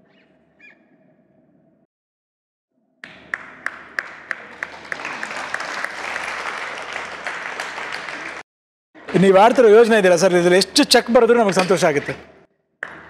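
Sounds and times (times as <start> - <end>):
audience clapping in unison: 3.0 - 8.4.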